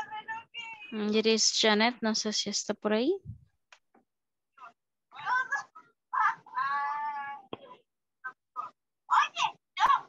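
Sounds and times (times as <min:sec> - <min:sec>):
long high call over video call: 0:00.0 - 0:10.0.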